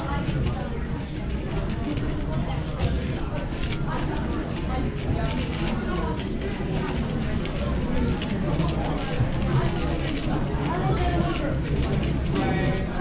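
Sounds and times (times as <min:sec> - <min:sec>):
light clicks and clatter: 0:00.0 - 0:13.0
people talking indistinctly: 0:00.0 - 0:13.0.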